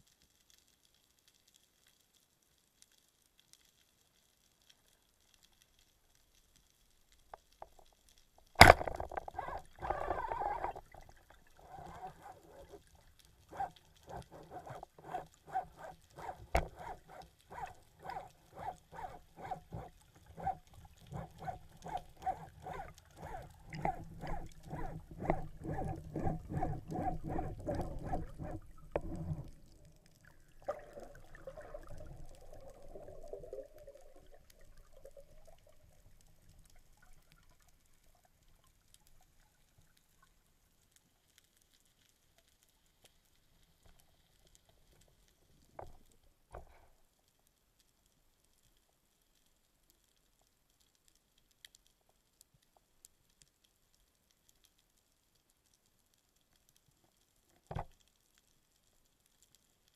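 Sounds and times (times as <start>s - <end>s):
underwater swimming pulses: 7.3s - 40.1s
faint underwater hum: 8.2s - 51.4s
swirl of water noise: 8.6s - 37.6s
low rush of water: 8.6s - 38.6s.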